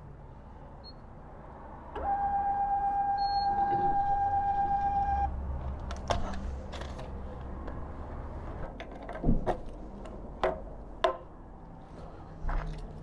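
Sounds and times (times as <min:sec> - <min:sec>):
gas pump electronic tone: 0:02.0 - 0:05.3.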